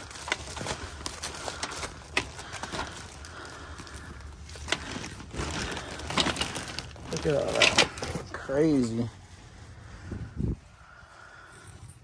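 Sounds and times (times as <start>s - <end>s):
wet papers rustling: 0.0s - 9.8s.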